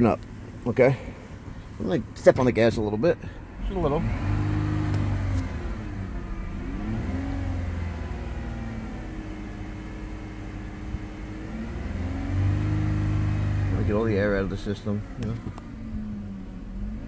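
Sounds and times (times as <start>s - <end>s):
car engine at raised revs: 0.0s - 17.0s.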